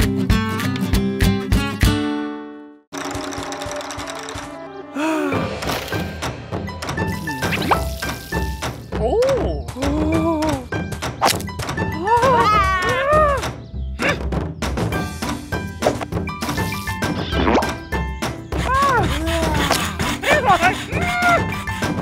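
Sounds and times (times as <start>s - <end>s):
cartoon music with percussive hits: 2.9s - 22.0s.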